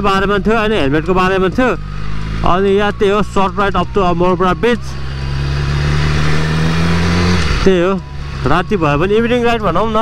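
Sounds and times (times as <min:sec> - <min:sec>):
motorcycle engine running: 0:00.0 - 0:10.0
wind and road noise: 0:00.0 - 0:10.0.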